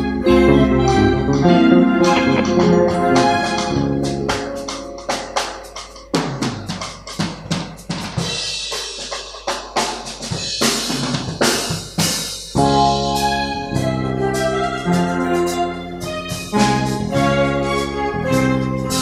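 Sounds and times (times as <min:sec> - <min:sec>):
band with keyboard and bass: 0:00.0 - 0:08.8, 0:10.1 - 0:19.0
drum kit break: 0:00.7 - 0:17.2.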